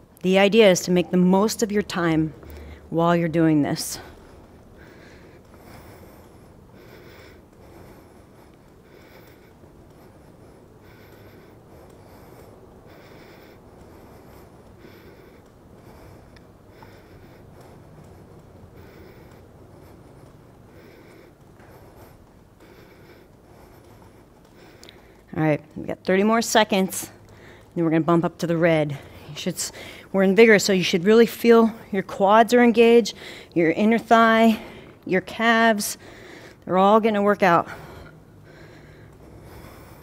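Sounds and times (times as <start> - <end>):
woman breathing hard: 0.0 - 40.0.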